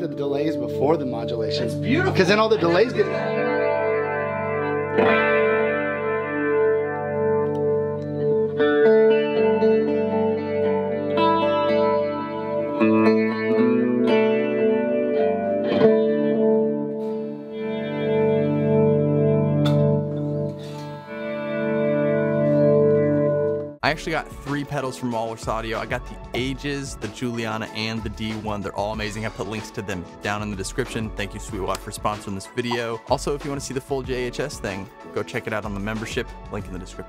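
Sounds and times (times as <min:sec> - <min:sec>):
electric guitar chords with delay: 0:00.0 - 0:23.8.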